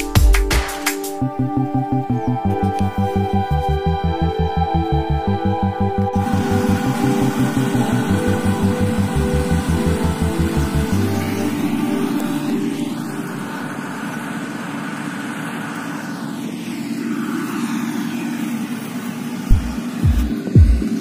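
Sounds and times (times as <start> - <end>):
music with bass beat: 0.0 - 11.7, 19.5 - 21.0
combine harvester engine running: 1.2 - 21.0
low thumps: 19.5 - 20.9.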